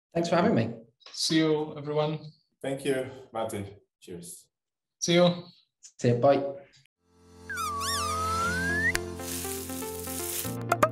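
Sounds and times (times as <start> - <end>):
whistle-like tone sliding up: 7.5 - 9.0.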